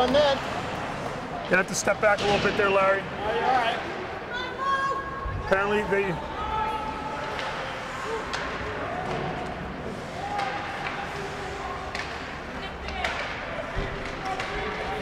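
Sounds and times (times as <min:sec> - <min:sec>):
hockey sticks and puck knocking: 0:07.2 - 0:09.6, 0:10.2 - 0:11.2, 0:11.8 - 0:15.0.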